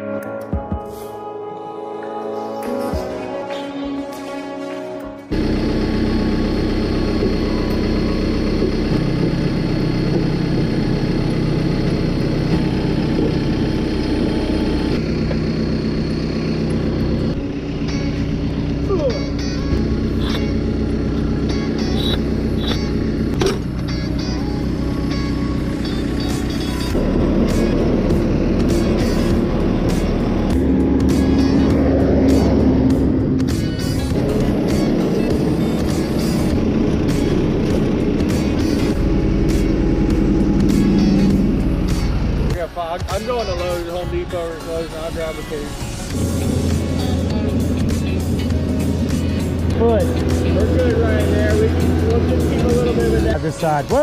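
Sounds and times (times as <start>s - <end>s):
diesel engine running: 3.6s - 54.0s.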